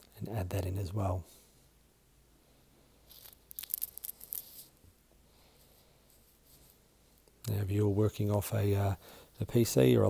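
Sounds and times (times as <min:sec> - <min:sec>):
faint scratchy rustling: 0:02.8 - 0:10.0.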